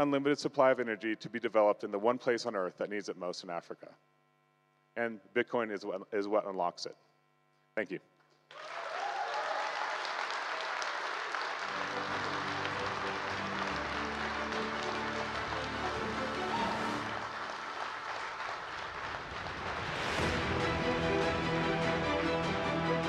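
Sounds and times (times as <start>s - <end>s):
audience applause: 8.5s - 23.0s
music: 11.5s - 18.2s, 19.9s - 23.0s.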